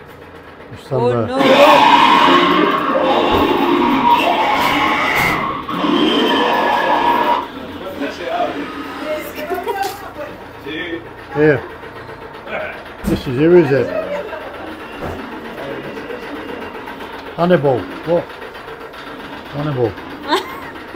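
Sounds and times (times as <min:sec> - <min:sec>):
horror music: 0:01.4 - 0:09.8, 0:12.2 - 0:20.9.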